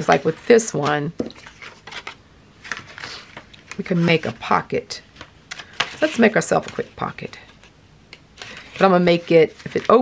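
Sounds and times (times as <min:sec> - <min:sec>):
paper rustling: 0:00.0 - 0:07.8, 0:08.4 - 0:10.0.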